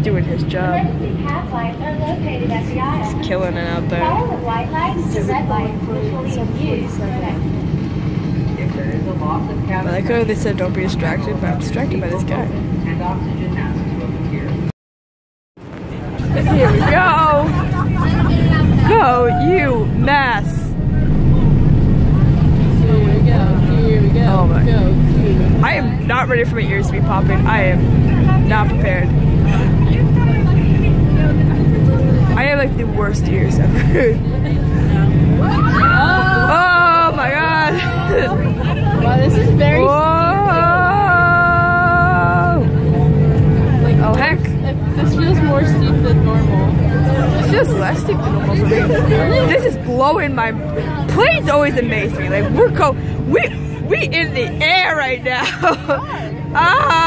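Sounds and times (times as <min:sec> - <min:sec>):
airliner engine rumble: 0:00.0 - 0:14.7, 0:15.6 - 0:57.0
woman's voice: 0:16.3 - 0:20.8, 0:22.5 - 0:42.7, 0:43.8 - 0:57.0.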